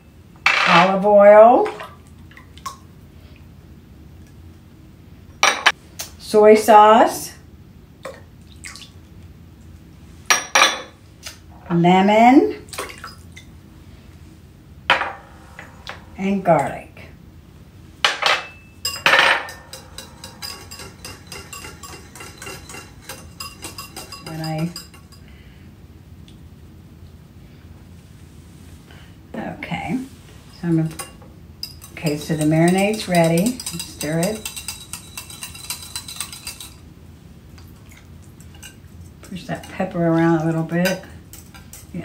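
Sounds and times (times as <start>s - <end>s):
whisk clicking against bowl: 19.5s - 25.2s, 31.0s - 36.8s.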